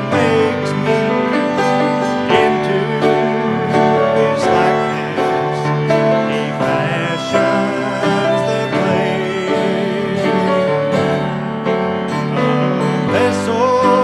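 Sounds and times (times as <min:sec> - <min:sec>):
man singing: 0:00.0 - 0:14.0
piano and guitars playing: 0:00.0 - 0:14.0.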